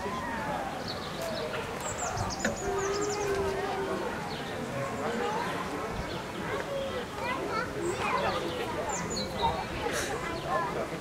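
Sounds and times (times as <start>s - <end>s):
children talking and calling: 0.0s - 11.0s
crowd chatter: 0.0s - 11.0s.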